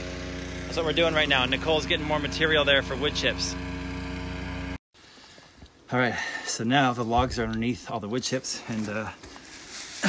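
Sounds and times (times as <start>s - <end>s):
small engine running: 0.0s - 4.8s.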